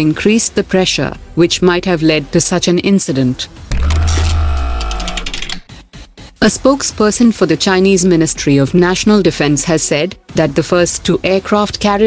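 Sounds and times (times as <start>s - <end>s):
quick ticks: 3.7s - 5.6s
ringing tones: 3.7s - 5.6s.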